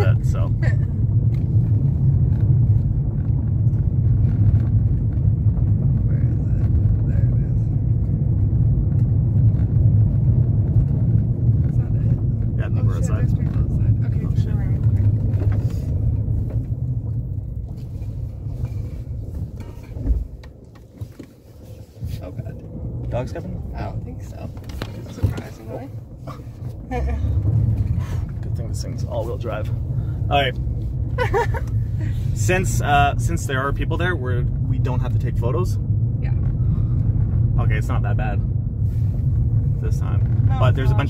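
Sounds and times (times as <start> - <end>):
road and engine rumble in car: 0.0 - 41.0.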